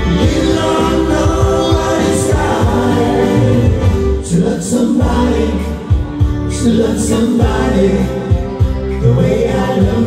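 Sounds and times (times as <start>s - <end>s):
live band music: 0.0s - 10.0s
vocal harmonies: 0.0s - 10.0s.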